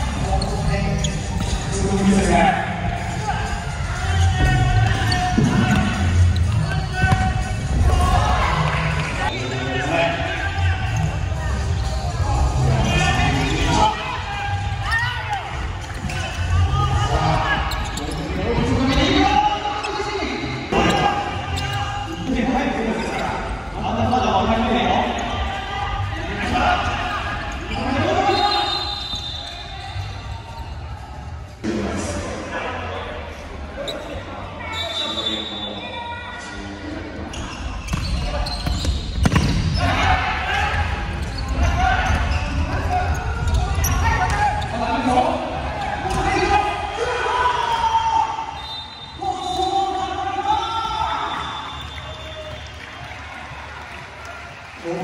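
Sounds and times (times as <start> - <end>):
shoes squeaking on floor: 0.0 - 1.8, 4.2 - 7.5, 17.3 - 22.4, 27.4 - 31.0, 33.8 - 35.7, 37.2 - 40.0, 40.8 - 44.8
players shouting: 2.3 - 23.5, 38.1 - 52.7.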